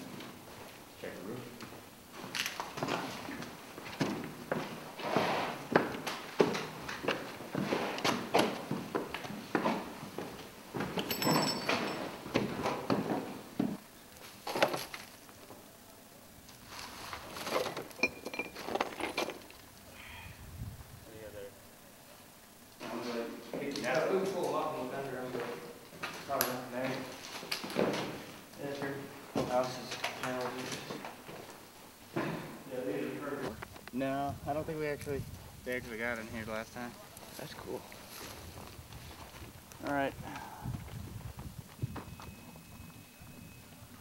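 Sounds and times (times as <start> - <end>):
footsteps in stairwell: 1.6 - 13.8, 25.2 - 32.7.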